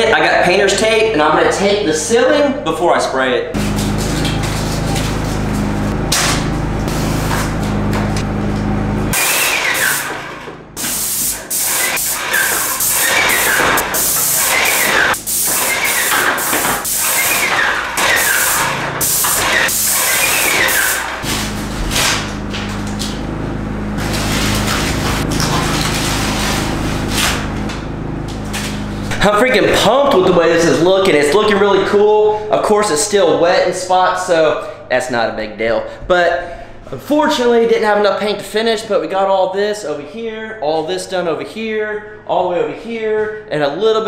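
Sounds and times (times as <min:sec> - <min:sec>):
sprayer motor humming: 0:03.6 - 0:30.4
paint spray gun hissing: 0:09.2 - 0:10.2, 0:10.8 - 0:21.7, 0:24.0 - 0:25.3.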